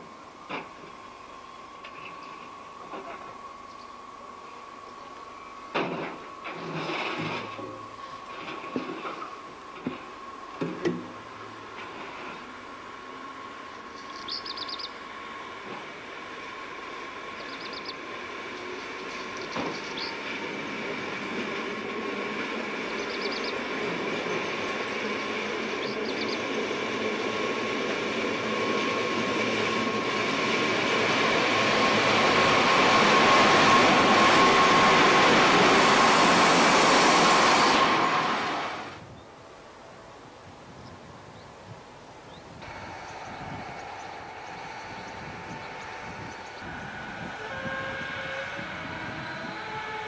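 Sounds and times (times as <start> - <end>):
electric locomotive whine: 0.0 - 50.0
wheels rumbling on rail: 0.0 - 50.0.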